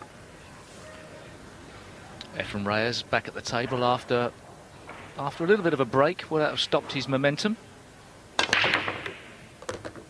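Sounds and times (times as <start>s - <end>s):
cue striking cue ball: 8.4s - 10.0s
pool balls clicking: 8.4s - 10.0s.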